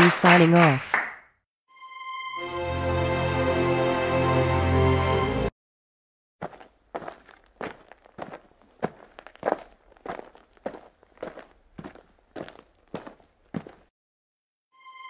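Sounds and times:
footsteps walking: 6.4s - 13.9s.

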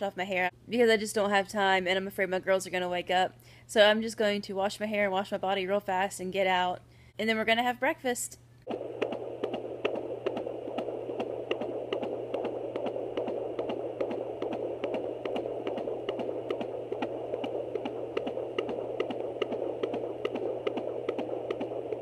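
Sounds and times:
fetal heartbeat whoosh: 8.7s - 22.0s.

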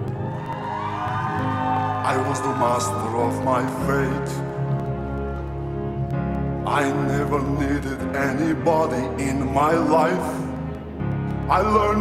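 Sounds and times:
orchestral ballad: 1.0s - 12.0s
person singing: 1.4s - 4.8s, 6.6s - 10.6s, 11.4s - 12.0s.

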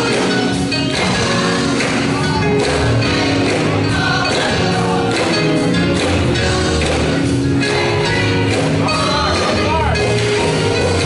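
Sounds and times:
choir singing gospel: 0.0s - 11.0s.

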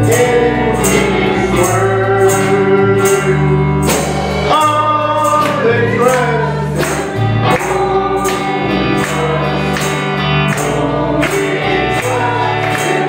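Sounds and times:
bass notes and chords: 0.0s - 13.0s
gospel song singing: 0.0s - 13.0s
sharp percussive beats: 0.0s - 13.0s.

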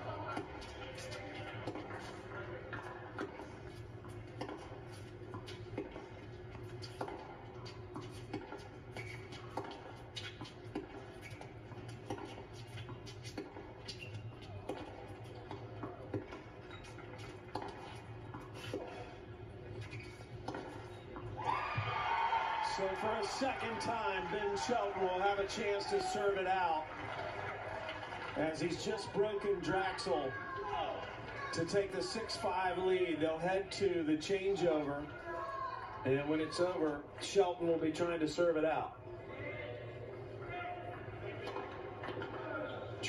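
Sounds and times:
racquets striking tennis ball: 0.0s - 21.9s
faint crowd noise: 0.0s - 43.0s.

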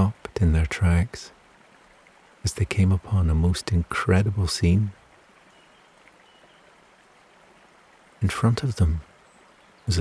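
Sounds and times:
gently flowing water: 0.0s - 10.0s.

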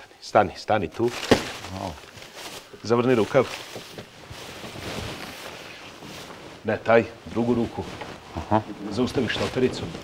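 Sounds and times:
plastic bag rustling: 1.0s - 10.0s.

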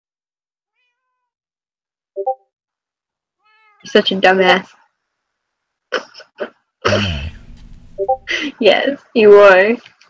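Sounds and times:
cat meowing: 0.7s - 1.4s, 3.4s - 3.9s.

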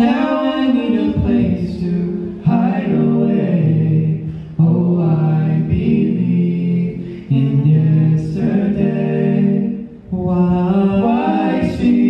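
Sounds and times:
male voices singing in harmony: 0.0s - 12.0s.

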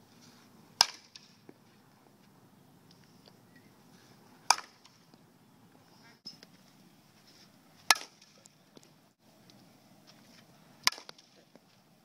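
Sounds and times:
bat hitting softball: 0.8s - 1.5s, 4.4s - 5.0s, 7.9s - 8.4s, 10.8s - 11.4s.

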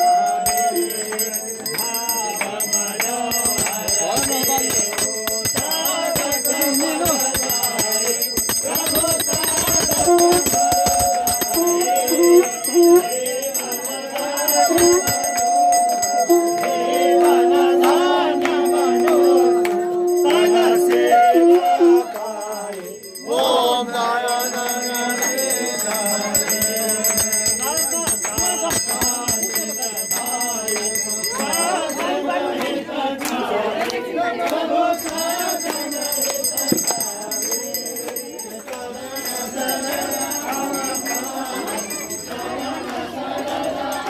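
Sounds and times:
ritual bells ringing: 0.0s - 33.9s, 34.5s - 44.0s
held mid-pitched tone: 14.2s - 23.3s
devotional music: 14.9s - 23.2s.

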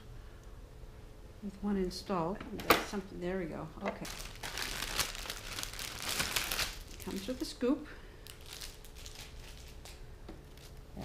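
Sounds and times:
plastic bag crinkling and rustling: 3.8s - 7.6s, 8.2s - 11.0s.

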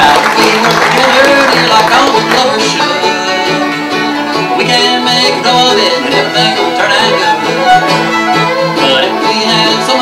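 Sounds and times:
acoustic bluegrass band: 0.0s - 10.0s.

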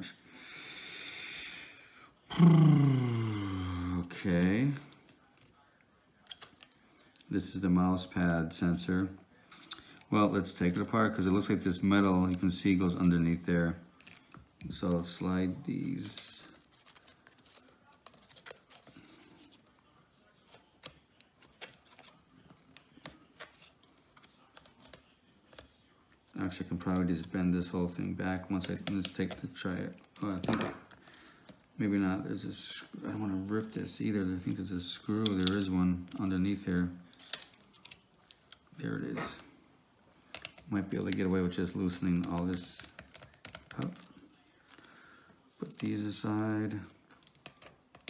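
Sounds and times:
man exhaling: 2.3s - 4.0s
man groaning: 2.3s - 4.1s
fingers clicking small laptop parts: 40.3s - 41.3s, 42.0s - 44.1s, 47.2s - 48.0s.

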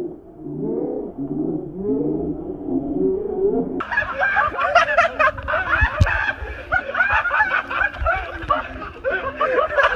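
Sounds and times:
people laughing and snickering: 3.8s - 9.9s.

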